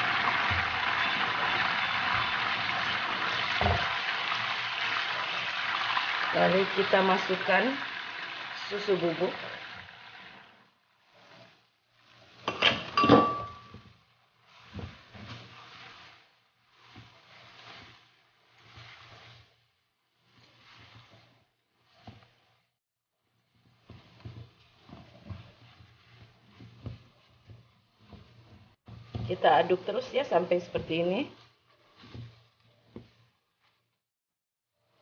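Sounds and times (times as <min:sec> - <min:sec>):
spatula scraping frying pan: 0:00.0 - 0:22.8, 0:23.4 - 0:34.0.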